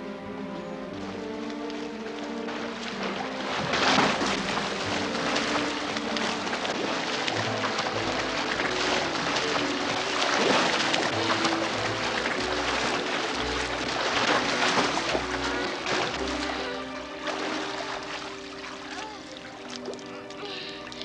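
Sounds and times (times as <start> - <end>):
music with held notes: 0.0 - 21.0
swimmers splashing in a pool: 1.0 - 21.0.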